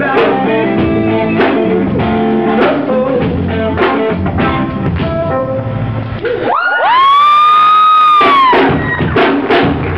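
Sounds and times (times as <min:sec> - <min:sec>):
crowd cheering: 0:06.2 - 0:09.9
drum hits: 0:08.2 - 0:09.9.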